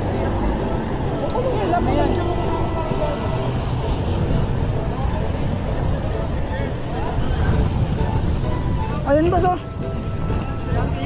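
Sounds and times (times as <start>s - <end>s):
faint voices of riders: 0.0s - 8.4s
wind rushing over microphone: 0.0s - 11.0s.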